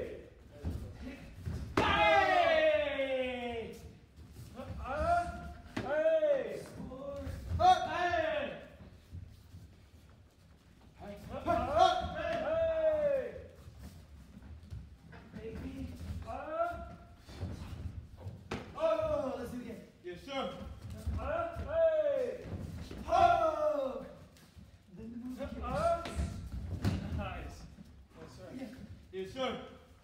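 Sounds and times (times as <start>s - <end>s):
fighters yelling: 1.7s - 3.8s, 23.0s - 24.1s.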